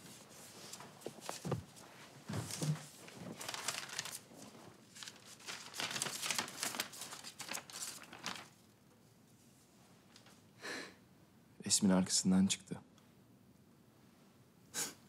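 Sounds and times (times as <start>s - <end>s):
paper rustling and crinkling: 0.0s - 8.7s.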